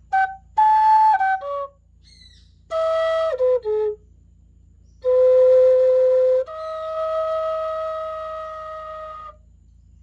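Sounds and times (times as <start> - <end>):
wooden flute long note: 0.0 - 1.8, 2.7 - 4.0, 5.0 - 9.4.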